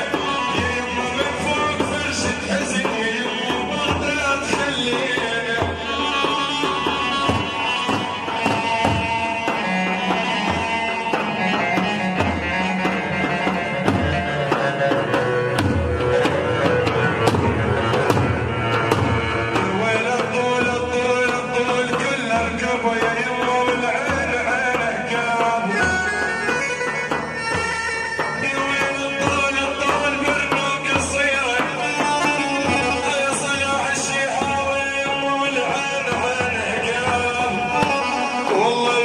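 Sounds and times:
double-headed drums beating: 0:00.0 - 0:39.0.

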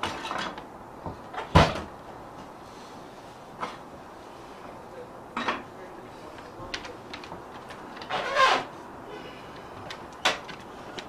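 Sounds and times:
heavy thud on wood: 0:01.5 - 0:01.9.

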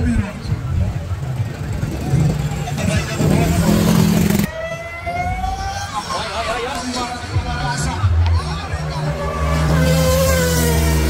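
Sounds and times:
crowd chatter: 0:00.0 - 0:11.0
motorcycle engine accelerating: 0:00.6 - 0:06.0, 0:08.5 - 0:11.0
motorcycle rushing past: 0:09.0 - 0:11.0.

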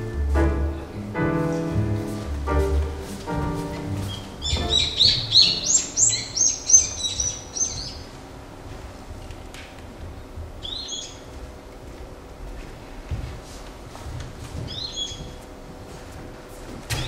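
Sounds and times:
music with sustained notes: 0:00.0 - 0:07.5
birdsong chirps over speakers: 0:04.4 - 0:08.1, 0:10.6 - 0:11.3.

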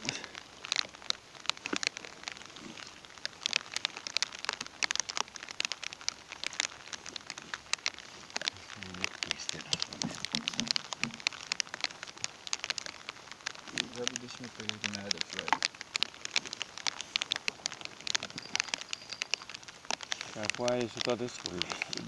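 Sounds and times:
rain on an inflatable boat: 0:00.0 - 0:22.0.

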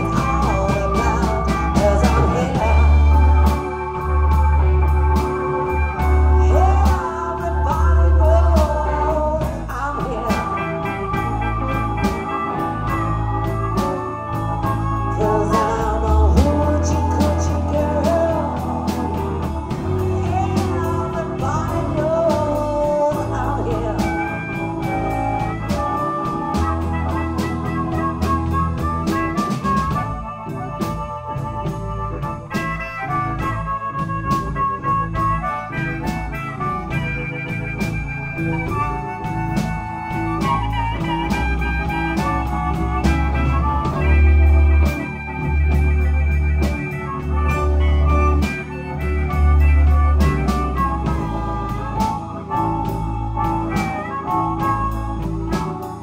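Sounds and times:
bass line: 0:00.0 - 0:56.0
drums keeping a steady beat: 0:00.0 - 0:56.0
electric blues band playing: 0:00.0 - 0:56.0
electric guitar: 0:00.0 - 0:56.0
organ keyboard: 0:00.0 - 0:56.0
person singing: 0:00.0 - 0:56.0
sustained high harmonica notes: 0:00.0 - 0:56.0.

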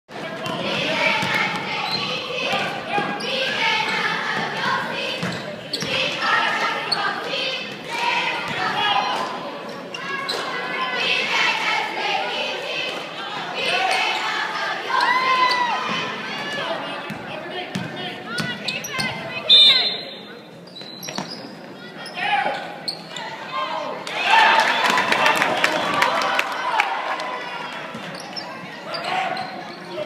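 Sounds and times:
spectators calling out and talking: 0:00.1 - 0:30.0.

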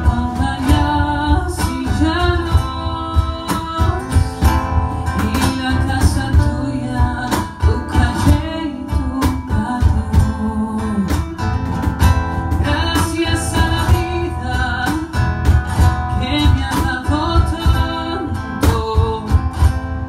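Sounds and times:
man singing into a microphone: 0:00.0 - 0:11.4, 0:12.6 - 0:19.8
acoustic guitar strumming: 0:00.0 - 0:20.0.

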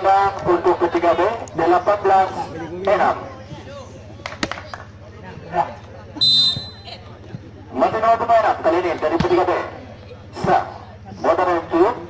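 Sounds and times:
men's voices and chatter: 0:00.0 - 0:12.0.

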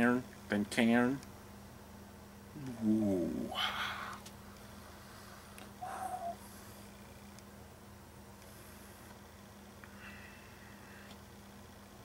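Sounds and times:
steady low hum: 0:00.0 - 0:12.0
hummed vocal sound: 0:02.5 - 0:04.3.

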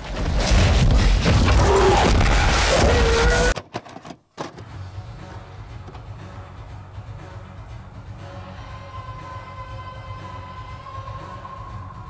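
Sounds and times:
quiet music: 0:04.5 - 0:12.0.

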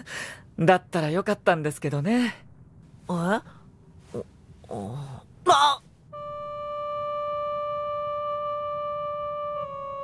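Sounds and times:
sustained electronic keyboard note: 0:06.1 - 0:10.0.

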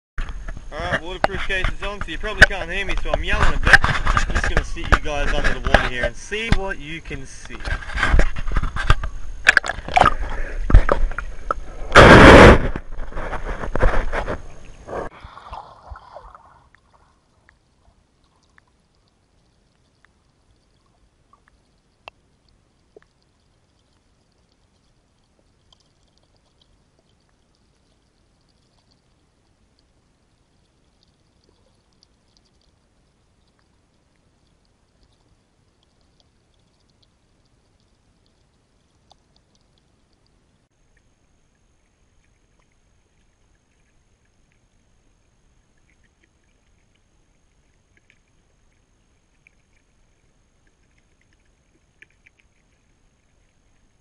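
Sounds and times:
faint underwater ticks: 0:00.2 - 0:12.0, 0:12.7 - 0:54.0
water splashing: 0:00.2 - 0:40.2, 0:40.8 - 0:54.0.

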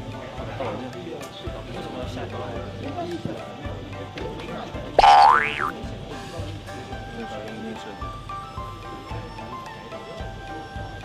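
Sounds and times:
light background music: 0:00.0 - 0:11.0
springy comic gliding tone: 0:05.0 - 0:05.7.

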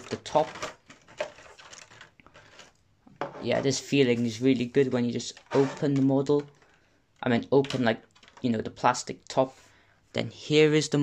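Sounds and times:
plastic packaging rustling: 0:00.0 - 0:02.8, 0:07.6 - 0:08.5.

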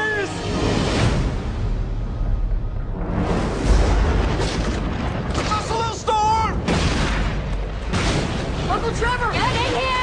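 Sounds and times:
trailer music: 0:00.0 - 0:05.4
loud blast and boom: 0:01.0 - 0:09.7.

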